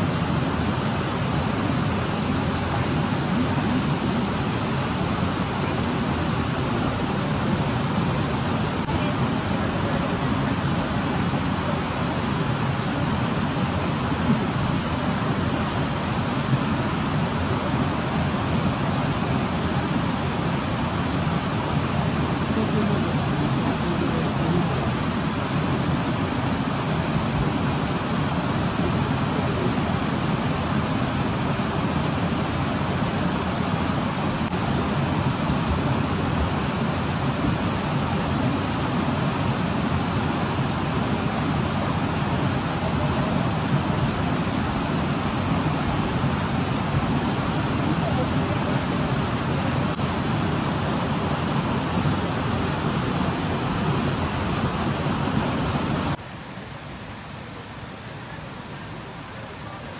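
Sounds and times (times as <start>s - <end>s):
river rushing: 0.0s - 59.9s.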